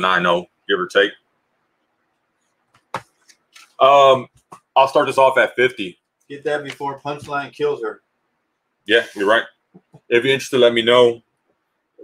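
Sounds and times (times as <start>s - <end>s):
man speaking: 0.0s - 1.2s, 3.8s - 8.0s, 8.8s - 11.2s.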